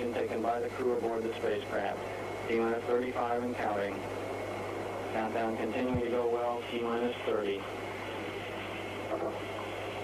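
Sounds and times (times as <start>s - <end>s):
low hum: 0.0s - 10.0s
recording hiss: 0.0s - 10.0s.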